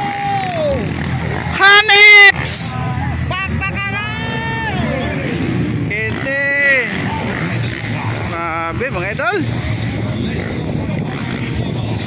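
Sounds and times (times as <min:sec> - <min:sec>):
dirt bike engines running: 0:00.0 - 0:12.0.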